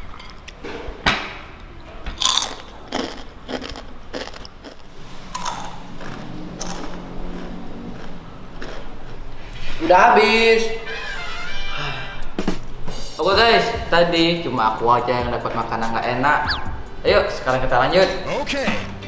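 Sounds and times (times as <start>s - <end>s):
crunchy snack being chewed: 2.2s - 9.3s.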